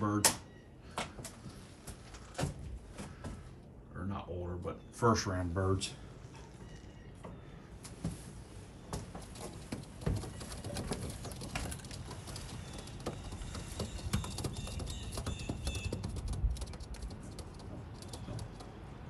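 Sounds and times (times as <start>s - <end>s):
faint high chirping: 6.4s - 7.7s
sharp clicks and taps: 9.6s - 18.9s
pigeons cooing: 9.8s - 19.0s.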